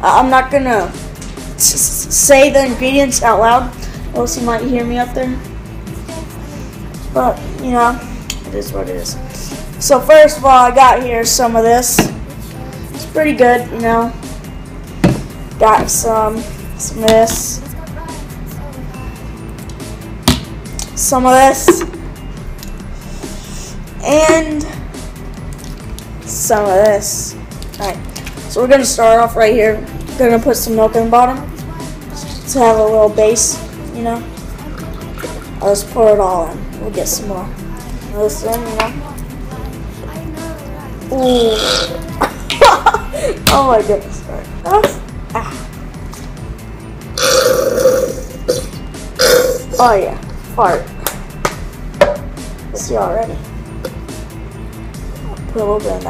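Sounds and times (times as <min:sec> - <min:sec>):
background music with steady beat: 0:00.0 - 0:56.0
plastic bottle knocking on table: 0:15.0 - 0:15.2, 0:52.0 - 0:52.2.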